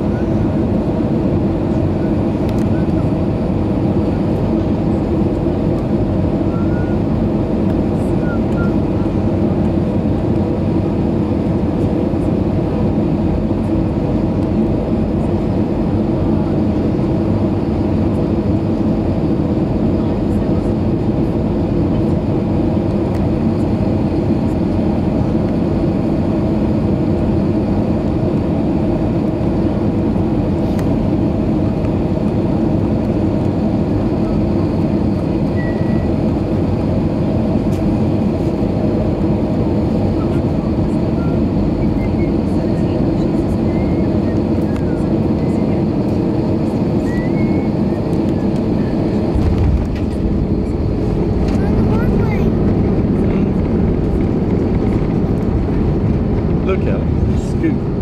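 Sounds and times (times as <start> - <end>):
airplane cabin engine rumble: 0.0 - 58.0.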